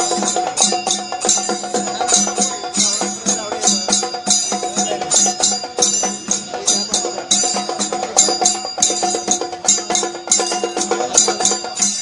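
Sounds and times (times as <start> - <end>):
festival percussion music: 0.0 - 12.0.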